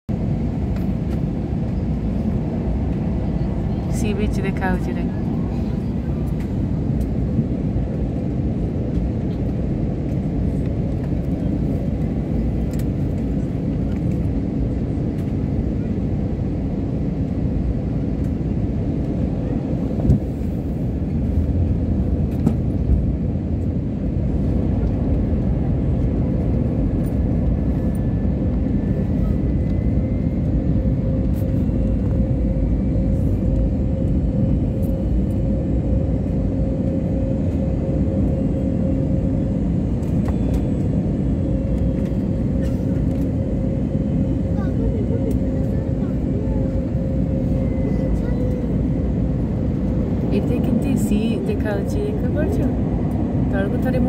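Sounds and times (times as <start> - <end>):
jet cabin roar: 0.1 - 54.0
steady hum: 28.4 - 54.0.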